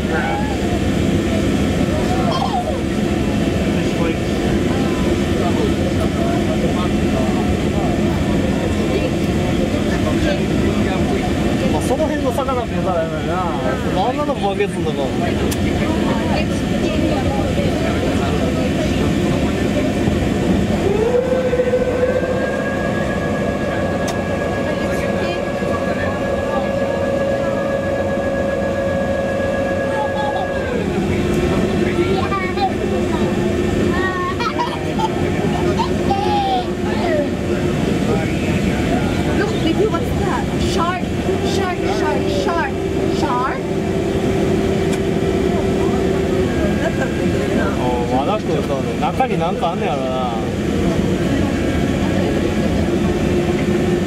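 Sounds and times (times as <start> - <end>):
machinery hum: 0.0 - 54.0
passengers chattering: 0.0 - 54.0.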